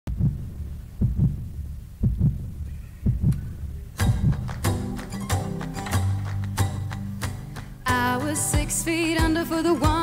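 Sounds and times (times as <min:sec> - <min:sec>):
heartbeat thumps: 0:00.1 - 0:05.5.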